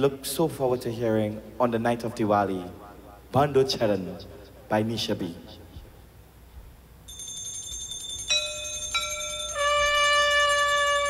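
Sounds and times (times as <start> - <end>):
keyboard bell-like tones: 7.1 - 11.0.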